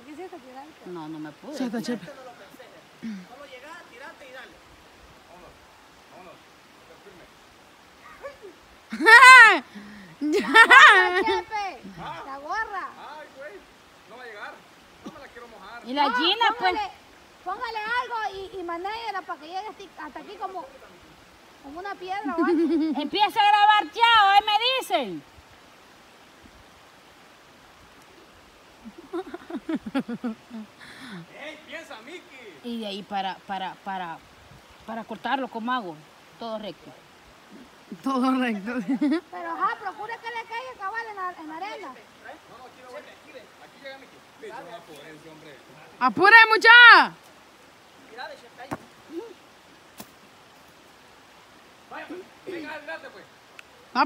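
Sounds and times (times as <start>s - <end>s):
faint outdoor hiss: 0.0s - 54.0s.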